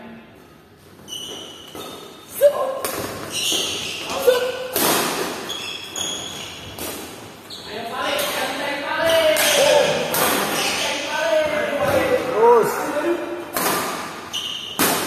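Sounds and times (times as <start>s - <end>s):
shoes squeaking on wooden court: 0.7s - 12.0s, 13.6s - 15.0s
rackets hitting shuttlecock: 4.6s - 5.6s, 8.2s - 10.8s, 13.5s - 15.0s.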